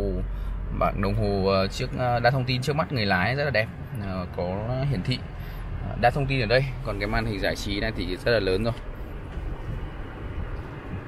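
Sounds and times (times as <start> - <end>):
car cabin hum and hiss: 0.0 - 11.0
climate control fan blowing: 0.0 - 11.0.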